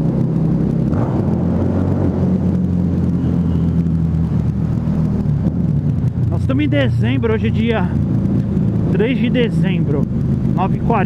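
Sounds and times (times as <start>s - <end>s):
motorcycle engine cruising: 0.0s - 11.0s.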